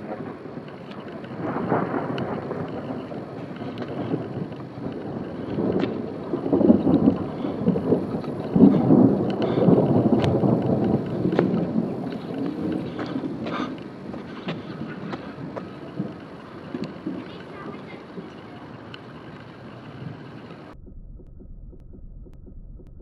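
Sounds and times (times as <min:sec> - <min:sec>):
rolling thunder rumble: 0:00.0 - 0:23.0
sharp ticks: 0:00.1 - 0:23.0.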